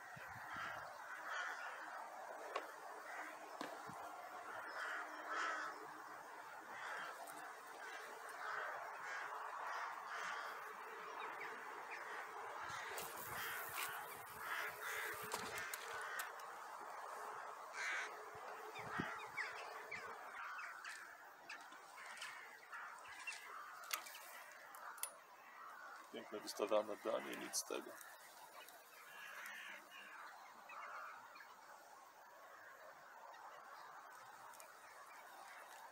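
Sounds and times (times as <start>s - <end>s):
birds cawing in chorus: 0.0s - 35.9s.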